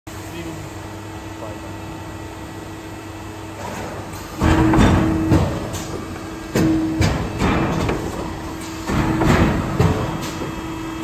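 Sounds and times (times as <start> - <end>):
machine humming: 0.1 - 11.0.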